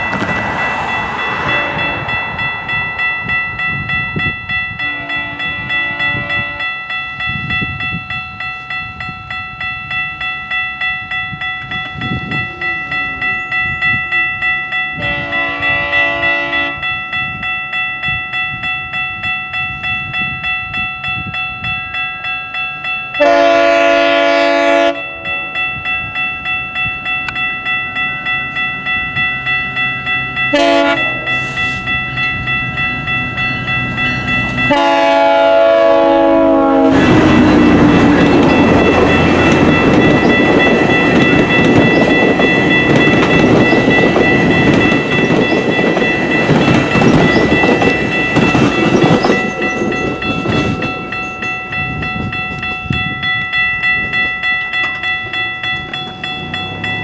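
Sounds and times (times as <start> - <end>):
train horn: 0.0 - 2.6, 4.8 - 6.8, 15.0 - 16.9, 23.2 - 25.4, 30.5 - 31.8, 34.7 - 39.6
crossing bell ringing: 0.0 - 57.0
train wheels rolling on rails: 0.0 - 57.0.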